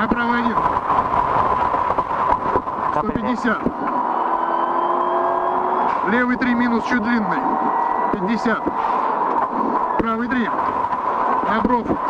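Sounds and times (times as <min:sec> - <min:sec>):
gravel and road noise: 0:00.0 - 0:12.0
rally car engine running hard: 0:00.0 - 0:12.0.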